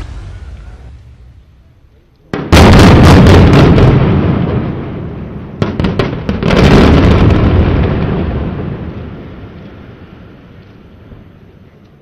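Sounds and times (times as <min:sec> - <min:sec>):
blasting charges cracking: 0:00.0 - 0:01.6
heavy rumble: 0:00.0 - 0:02.0.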